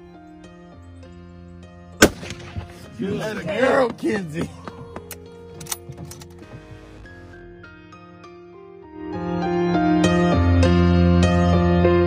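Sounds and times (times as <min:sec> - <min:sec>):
background music: 0:00.0 - 0:12.0
rifle shot: 0:02.0 - 0:03.1.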